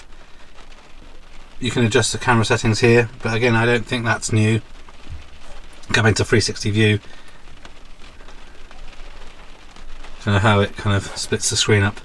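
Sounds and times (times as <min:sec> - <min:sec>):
rain on a car roof: 0:00.0 - 0:12.0.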